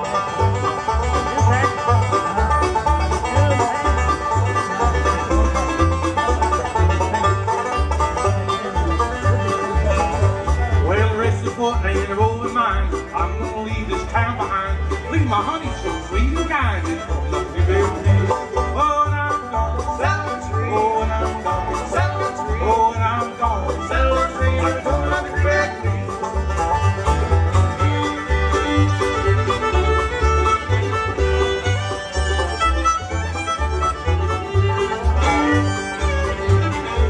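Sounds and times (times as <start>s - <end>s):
bluegrass band playing: 0.0s - 37.0s
fiddle lead: 0.0s - 37.0s.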